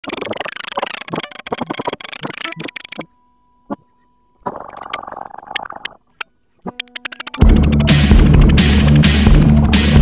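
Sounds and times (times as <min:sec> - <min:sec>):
static crackle: 0:00.0 - 0:07.9
faint steady tone: 0:02.5 - 0:06.6.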